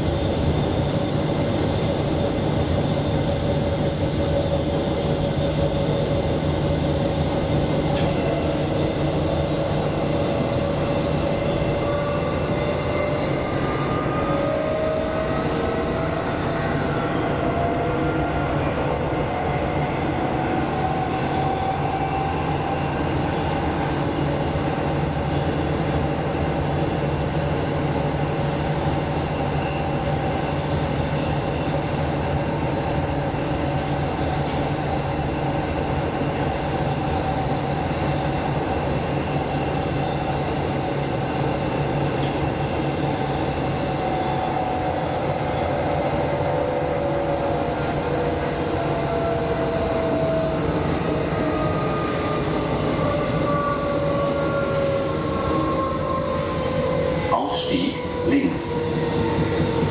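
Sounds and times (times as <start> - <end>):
train rumbling: 0.0 - 59.9.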